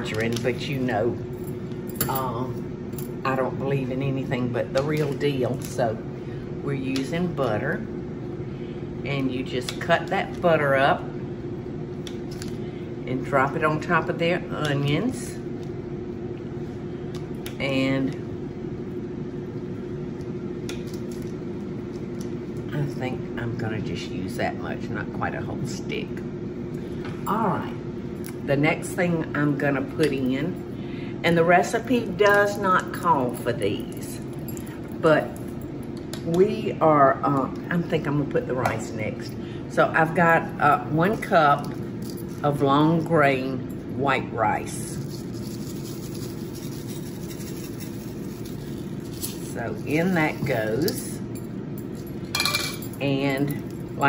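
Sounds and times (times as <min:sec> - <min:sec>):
low room hum: 0:00.0 - 0:54.0.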